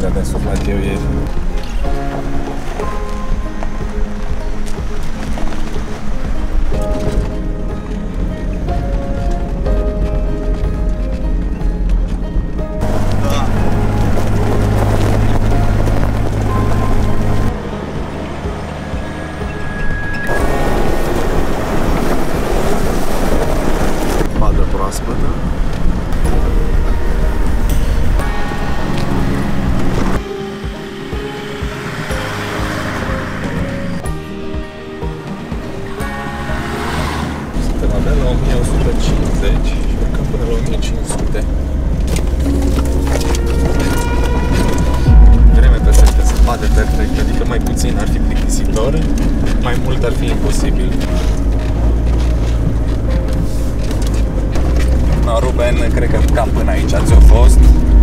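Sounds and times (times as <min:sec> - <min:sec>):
background music: 0:00.0 - 0:58.0
vehicle engine running: 0:00.0 - 0:58.0.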